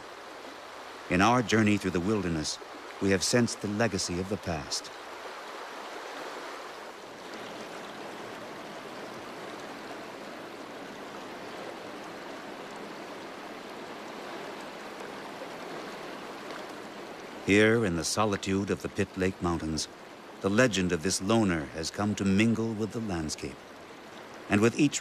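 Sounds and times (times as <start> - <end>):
fast-flowing river rushing: 0.0 - 25.0.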